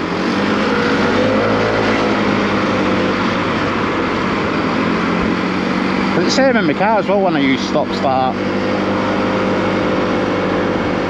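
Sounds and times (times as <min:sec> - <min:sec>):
motorcycle engine accelerating: 0:00.0 - 0:11.0
wind and road noise: 0:00.0 - 0:11.0.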